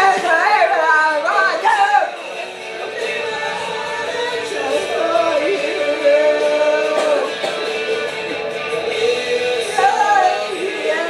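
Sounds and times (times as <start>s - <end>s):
person singing high and loud: 0.0s - 2.2s, 2.8s - 11.0s
pop-rock song recording: 0.0s - 11.0s.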